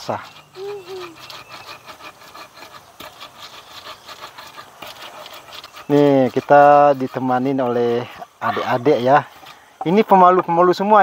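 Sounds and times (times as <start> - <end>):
stone pestle grinding in wooden mortar: 0.0 - 10.5.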